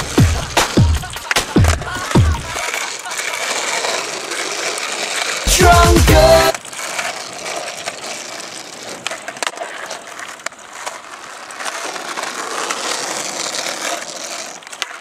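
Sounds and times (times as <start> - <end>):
skateboard clacks: 0.0 - 15.0
skateboard wheels rolling on asphalt: 0.0 - 15.0.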